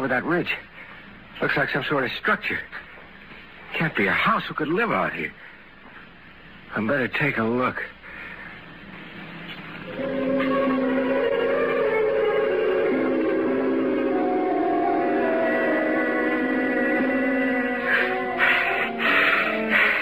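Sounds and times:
sustained musical chords: 9.9 - 20.0.

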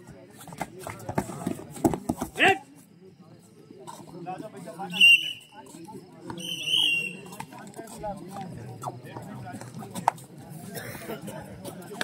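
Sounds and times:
hubbub of voices: 0.0 - 12.0
players thudding on foam mats: 0.4 - 2.5.

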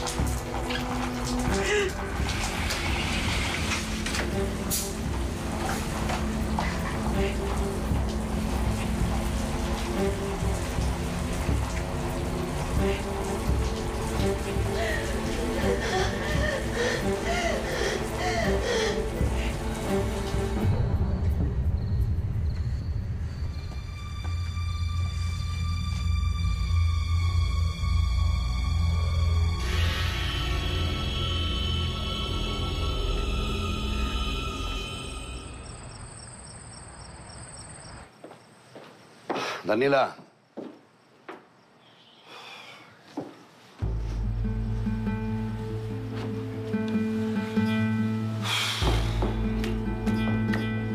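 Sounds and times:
shower water spraying: 0.0 - 21.0
background music with held tones: 0.0 - 22.3, 23.6 - 35.9, 43.8 - 50.9
crickets chirping: 15.8 - 28.5, 29.1 - 43.0.

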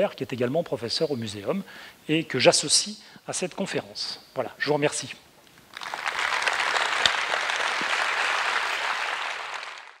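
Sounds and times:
audience applauding: 5.7 - 10.0.

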